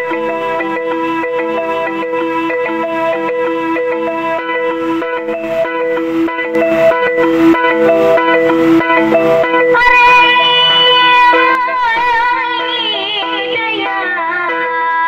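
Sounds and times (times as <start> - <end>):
keyboard plucked melodic figure: 0.0 - 15.0.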